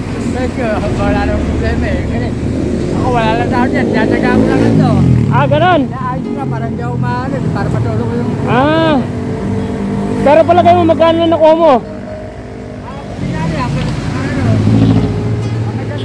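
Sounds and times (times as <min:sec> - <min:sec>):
vehicle engine running: 0:00.0 - 0:05.8
street traffic rumble: 0:00.0 - 0:16.0.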